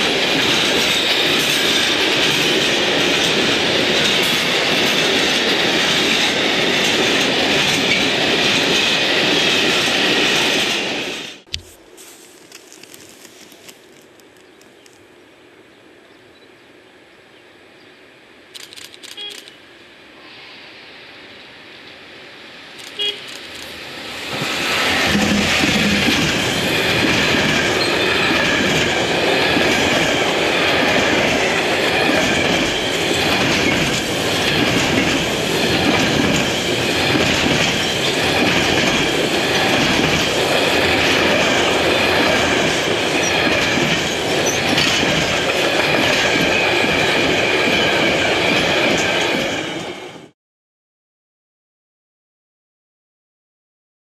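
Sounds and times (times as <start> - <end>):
freight train wheels rumbling: 0.0 - 15.0, 21.9 - 50.3.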